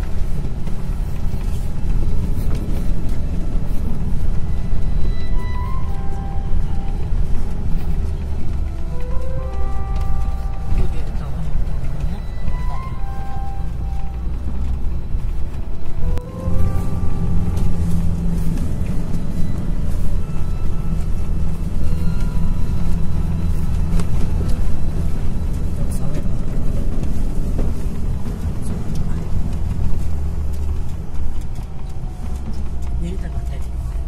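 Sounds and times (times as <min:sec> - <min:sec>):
car cabin rumble: 0:00.0 - 0:34.0
background music: 0:04.1 - 0:32.4.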